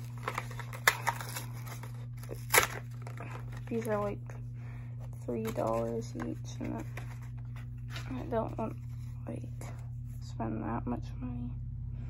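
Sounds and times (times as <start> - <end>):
sharp crackle of foil tearing: 0.0 - 3.9
foil wrapper crinkling: 0.0 - 4.2, 5.2 - 9.0.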